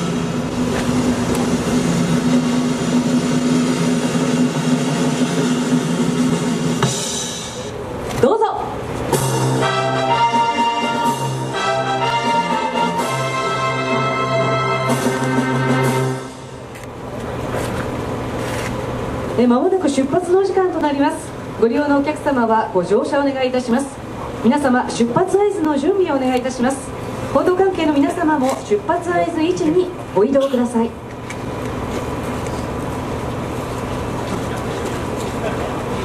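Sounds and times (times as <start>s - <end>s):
drum roll over loudspeakers: 0.0s - 8.0s
music: 1.9s - 7.8s, 9.1s - 16.7s.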